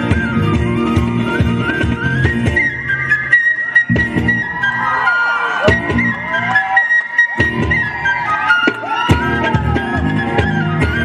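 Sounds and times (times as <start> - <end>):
drums: 0.0 - 6.5, 7.3 - 11.0
bass guitar: 0.0 - 6.8, 7.4 - 11.0
flute melody: 0.0 - 11.0.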